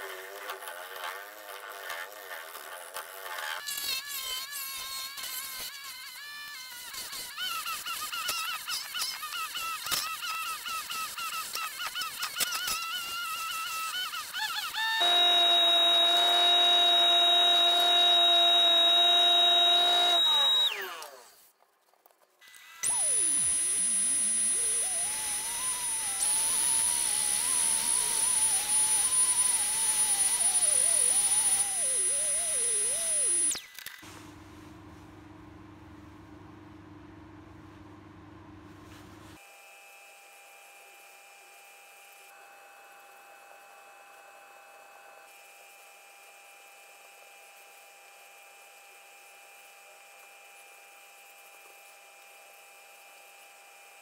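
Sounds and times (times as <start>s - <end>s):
rotary tool cutting wood: 0.0s - 21.5s, 22.4s - 33.9s
power tool motor whining: 2.6s - 21.5s, 22.4s - 33.8s.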